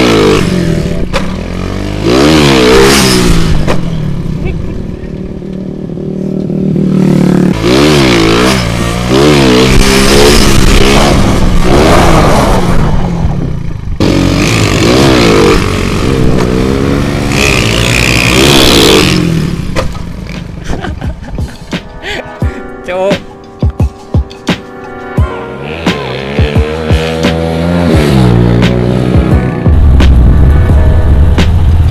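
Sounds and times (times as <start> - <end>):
motorcycle engine revving: 0.0 - 21.4, 25.6 - 31.9
rushing wind noise: 8.6 - 14.0.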